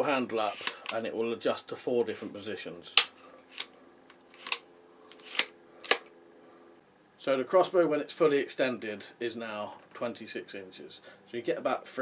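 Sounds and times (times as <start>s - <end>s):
sharp clicks of sliding stock: 3.0s - 6.1s.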